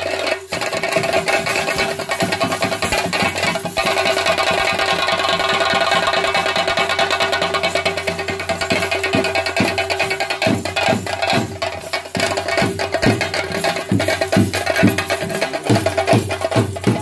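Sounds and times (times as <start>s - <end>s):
clashing hand cymbals: 0.0s - 17.0s
drums beaten fast: 0.0s - 17.0s.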